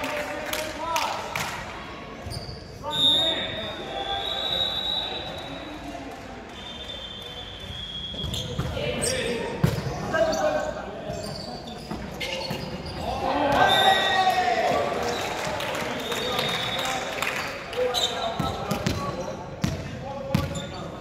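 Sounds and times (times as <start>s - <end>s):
shoes squeaking on floor: 2.2s - 3.0s, 7.6s - 14.0s, 20.4s - 21.0s
players shouting: 13.0s - 15.6s.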